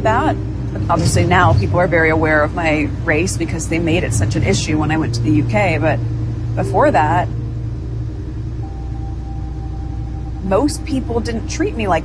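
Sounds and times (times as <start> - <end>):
road rumble inside car: 0.0 - 12.0.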